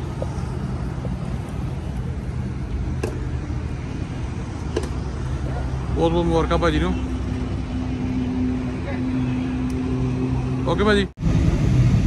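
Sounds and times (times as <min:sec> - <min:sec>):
low engine hum: 0:00.0 - 0:12.0
road traffic: 0:00.0 - 0:12.0.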